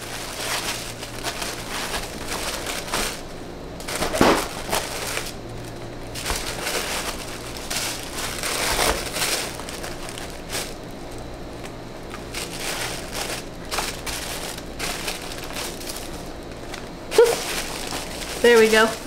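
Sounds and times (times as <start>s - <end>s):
cardboard boxes shuffled: 0.0s - 3.2s, 6.1s - 10.8s, 12.0s - 19.0s
packing paper crinkling: 0.0s - 19.0s.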